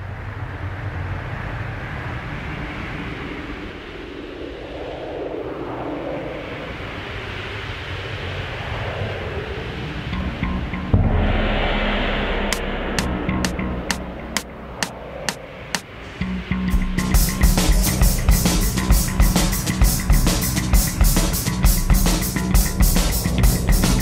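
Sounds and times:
low rumble: 0:00.0 - 0:24.0
swirling wind noise: 0:00.0 - 0:24.0
deep bass music: 0:10.6 - 0:14.9, 0:16.2 - 0:24.0.

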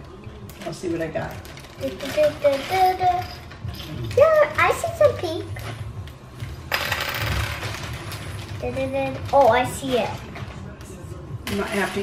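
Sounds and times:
plastic game pieces rattling: 0:01.2 - 0:04.3.

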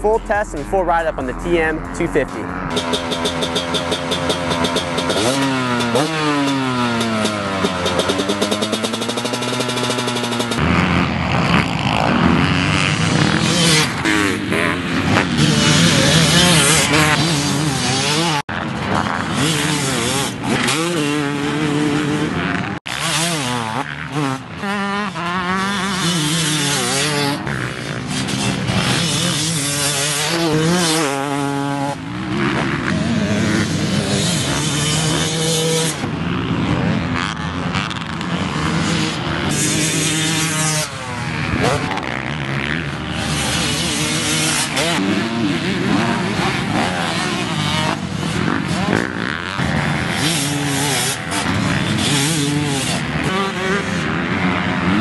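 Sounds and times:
motocross bike engine revving: 0:00.0 - 0:55.0.

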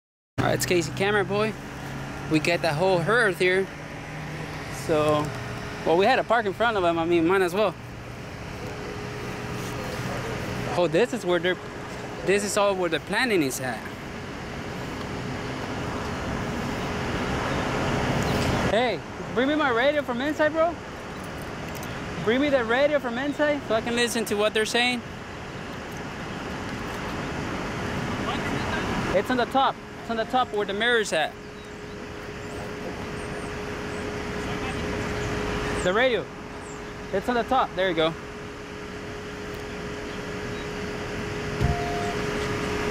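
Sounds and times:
vehicle passing: 0:00.4 - 0:42.9
faint steady tone: 0:29.5 - 0:42.9.

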